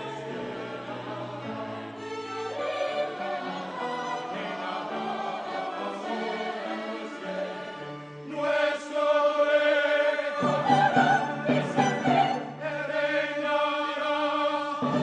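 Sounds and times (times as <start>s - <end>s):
choir singing with orchestra: 0.0s - 15.0s.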